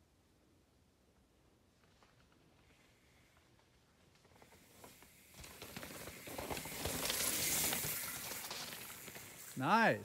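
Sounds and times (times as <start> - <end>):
bike tyres crunching over dirt: 1.3 - 10.0.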